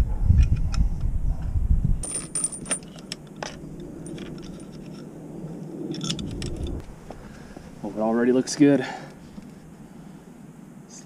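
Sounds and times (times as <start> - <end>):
low rumble: 0.0 - 8.2
metal parts clinking: 2.0 - 5.1.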